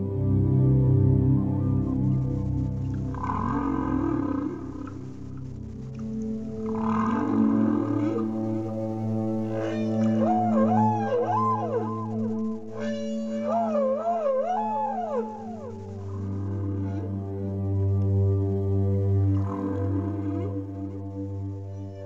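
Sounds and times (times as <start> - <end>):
ambient music drone: 0.0 - 22.0
whale song: 0.0 - 22.0.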